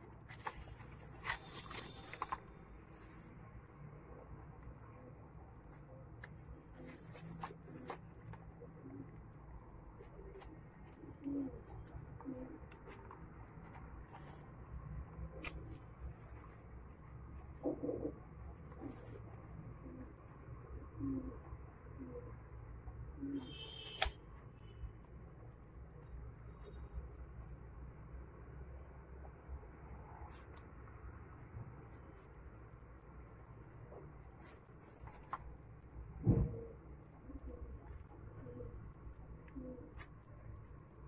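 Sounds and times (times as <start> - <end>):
scissors snipping paper: 0.2 - 2.4.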